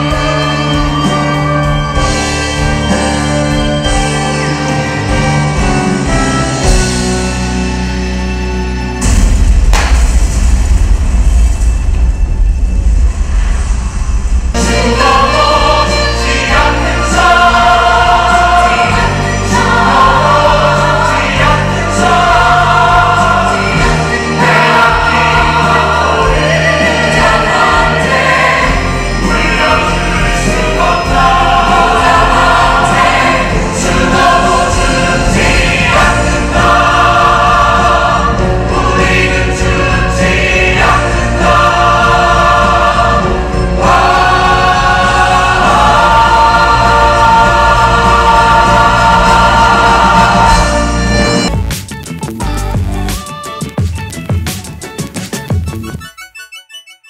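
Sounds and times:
instrumental accompaniment: 0.0 - 10.3, 14.5 - 57.0
male chorus singing: 14.5 - 51.5.

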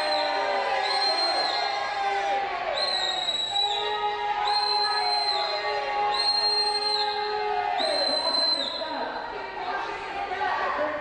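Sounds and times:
crowd voices: 0.0 - 11.0
high-pitched whistle blasts: 2.8 - 8.9.

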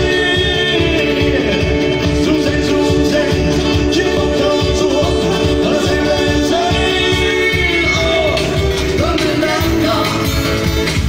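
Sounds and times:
amplified band music: 0.0 - 11.0
person singing: 0.0 - 11.0
steady drum beat: 0.0 - 11.0.

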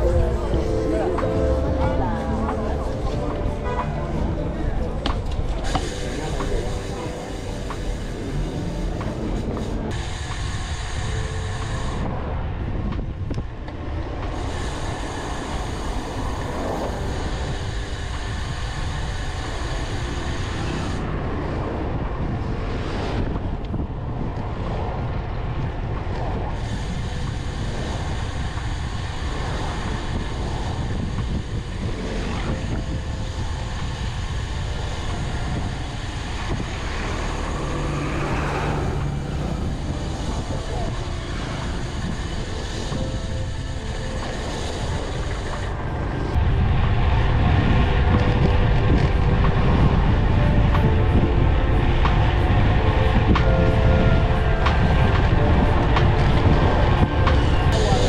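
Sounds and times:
car and truck engines: 0.0 - 58.0
road noise: 0.0 - 58.0
wind rush: 0.0 - 58.0.

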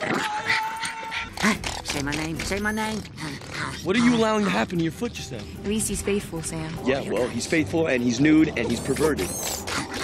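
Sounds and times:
dog whining: 0.0 - 4.6, 8.9 - 10.0.

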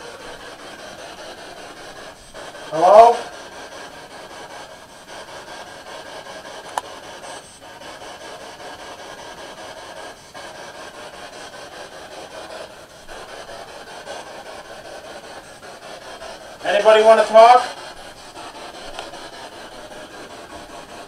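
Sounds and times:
radio static hiss: 0.0 - 3.5, 16.6 - 18.4.

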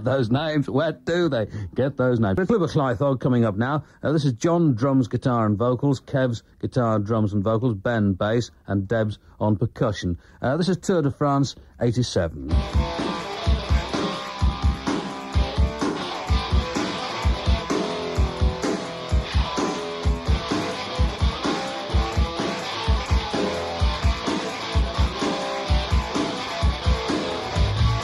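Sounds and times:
bass: 12.3 - 28.0
guitar: 12.4 - 28.0
drum beat: 12.5 - 28.0.

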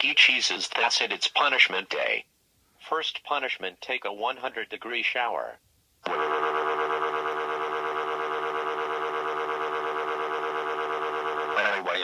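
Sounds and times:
synthetic voice scream: 11.6 - 12.0.

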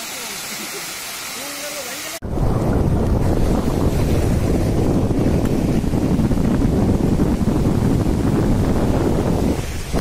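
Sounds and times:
landslide rumble: 2.2 - 10.0.

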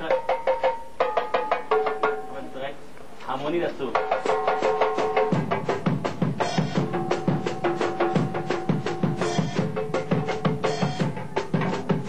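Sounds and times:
marimba chords: 3.9 - 12.0.

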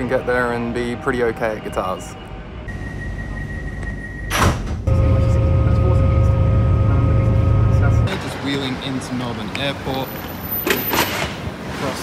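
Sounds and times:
high whine: 2.7 - 8.1
train carriage rumble: 2.7 - 10.1.

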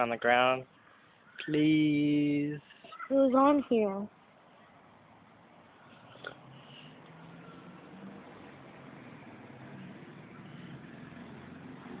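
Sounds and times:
faint background rumble and hiss: 0.0 - 7.9.

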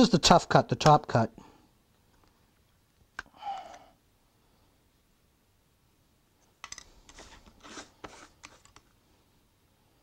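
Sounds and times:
knife blade scraping plastic: 7.0 - 8.8.

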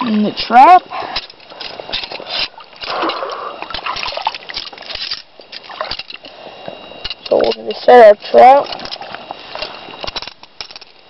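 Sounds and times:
creek water sloshing and splashing: 1.0 - 6.2
metal chain clicking and rattling: 10.0 - 11.0.

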